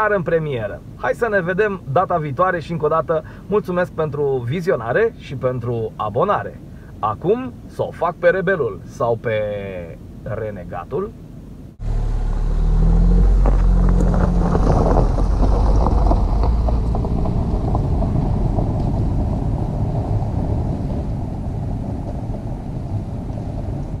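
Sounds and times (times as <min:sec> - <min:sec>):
car engine rumble: 0:00.0 - 0:24.0
tyres crackling over leaves: 0:11.8 - 0:21.3.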